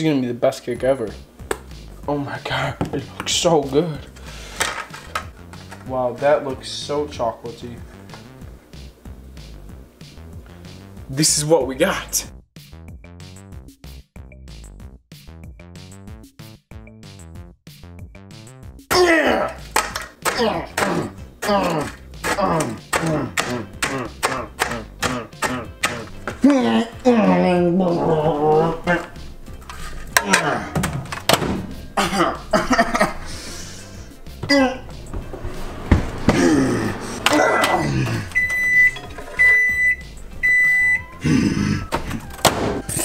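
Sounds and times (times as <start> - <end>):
voice crying out: 18.9 - 19.6, 20.3 - 29.2, 34.4 - 34.9, 36.3 - 38.4
microwave beeps: 38.3 - 41.2.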